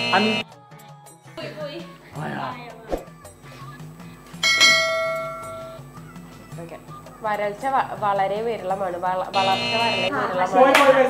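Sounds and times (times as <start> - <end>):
faint background music: 0.0 - 11.0
bell chime: 4.4 - 5.8.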